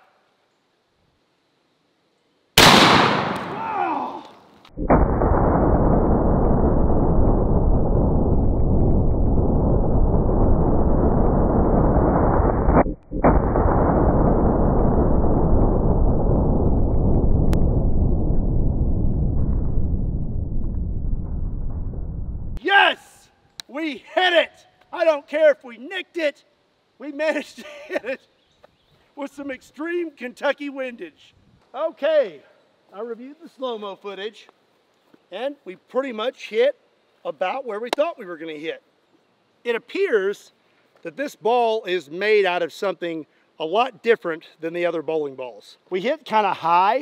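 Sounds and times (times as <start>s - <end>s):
rifle shot: 2.6s - 3.8s, 4.8s - 8.9s, 12.1s - 15.2s
low rushing noise: 4.7s - 22.6s.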